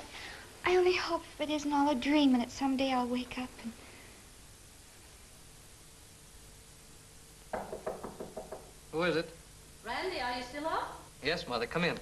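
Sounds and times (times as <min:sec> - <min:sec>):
knuckles knocking on door: 0:07.5 - 0:08.8.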